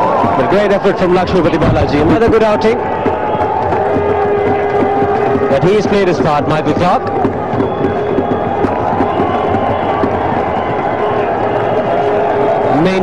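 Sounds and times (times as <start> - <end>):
stadium crowd cheering: 0.0 - 13.0.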